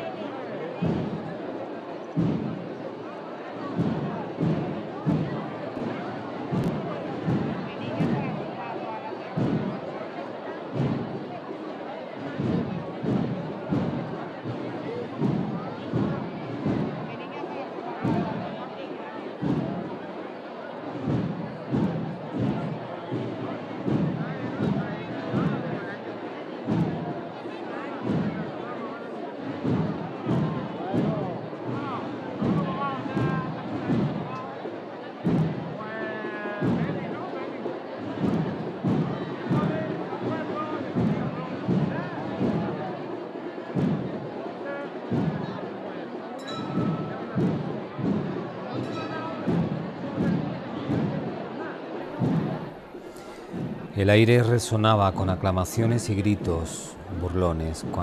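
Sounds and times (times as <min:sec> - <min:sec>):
crowd talking: 0:00.0 - 0:58.0
procession drums beating: 0:00.8 - 0:02.9, 0:03.6 - 0:09.9, 0:10.6 - 0:17.3, 0:19.3 - 0:20.2, 0:20.9 - 0:27.4, 0:28.0 - 0:28.5, 0:29.4 - 0:35.8, 0:36.6 - 0:43.1, 0:43.7 - 0:44.3, 0:45.0 - 0:45.6, 0:46.4 - 0:51.4, 0:52.1 - 0:58.0.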